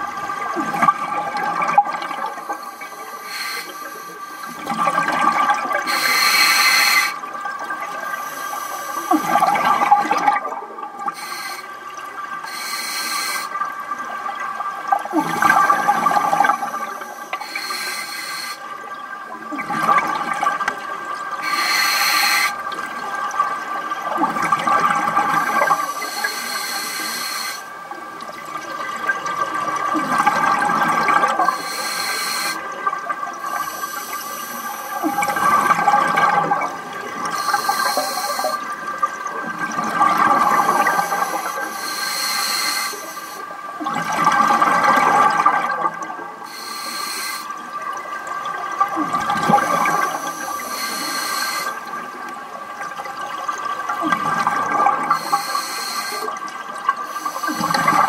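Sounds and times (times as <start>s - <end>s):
rushing exhaled bubbles: 0.0s - 3.3s, 4.4s - 8.3s, 9.0s - 12.6s, 13.5s - 17.6s, 19.4s - 21.7s, 22.5s - 26.2s, 28.0s - 31.8s, 32.4s - 41.8s, 43.6s - 46.6s, 47.5s - 55.6s, 56.3s - 58.0s
diver breathing through regulator: 2.4s - 4.8s, 5.8s - 7.2s, 8.1s - 9.8s, 11.1s - 11.7s, 12.5s - 13.6s, 15.2s - 18.6s, 21.4s - 22.6s, 25.5s - 27.7s, 31.4s - 32.7s, 33.4s - 36.1s, 37.3s - 38.7s, 40.4s - 43.5s, 46.5s - 47.6s, 49.5s - 51.8s, 55.0s - 56.4s, 57.0s - 58.0s.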